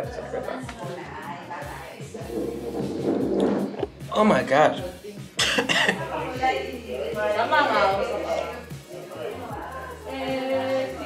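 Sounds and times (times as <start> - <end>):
man coughing: 5.4 - 6.0.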